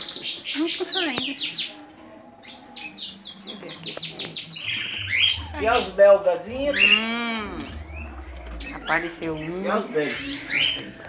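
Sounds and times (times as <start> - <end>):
small cage birds chirping: 0.0 - 11.0.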